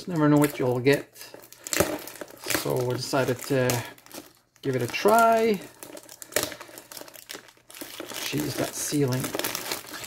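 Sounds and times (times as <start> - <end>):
plastic shrink wrap crinkling: 0.0 - 10.0
sharp crackle of wrap: 0.0 - 10.0.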